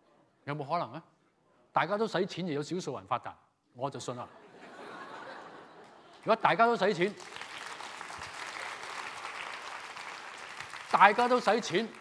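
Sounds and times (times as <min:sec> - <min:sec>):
audience applauding: 0:05.8 - 0:12.0.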